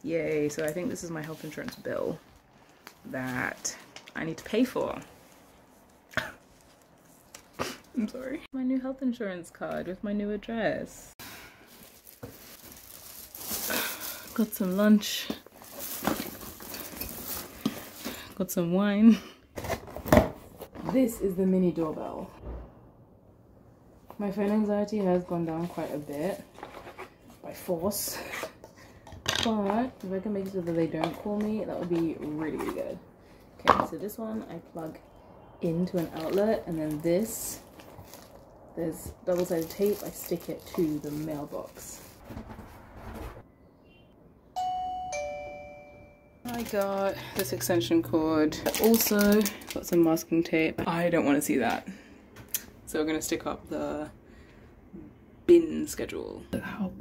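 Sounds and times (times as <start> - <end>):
canvas bag rustling: 11.6 - 18.1, 35.7 - 43.0
handling rustling: 11.7 - 18.2
doorbell ding-dong chime: 44.6 - 46.4.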